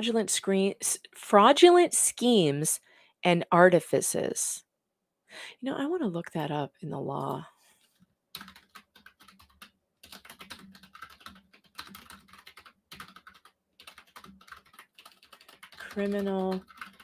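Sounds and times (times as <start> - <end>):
typing on computer keyboard: 8.3 - 17.0.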